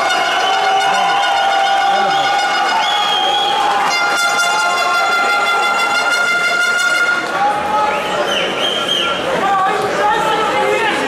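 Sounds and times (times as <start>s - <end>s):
loud horn-like tone: 0.0s - 7.5s.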